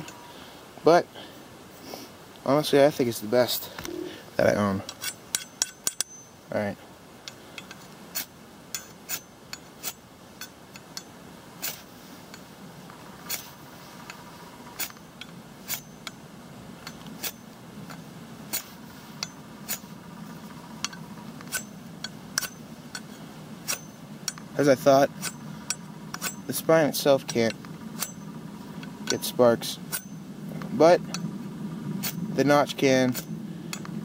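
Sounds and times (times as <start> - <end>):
ferro rod scraping knife spine: 4.8 - 6.3, 7.3 - 12.5, 13.2 - 16.2, 16.8 - 20.0, 20.8 - 24.5, 25.2 - 26.7, 32.0 - 32.3.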